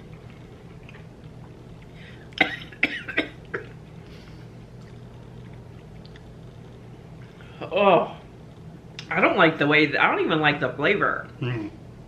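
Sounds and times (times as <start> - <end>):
low room hum: 0.0 - 12.0
person coughing: 2.4 - 3.7.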